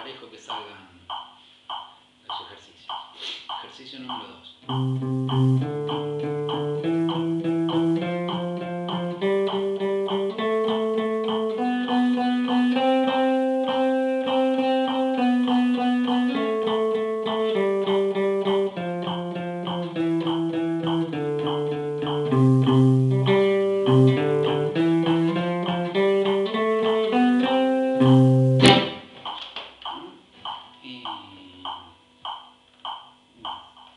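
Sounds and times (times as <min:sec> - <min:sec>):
guitar played with a pick: 0:04.7 - 0:29.2.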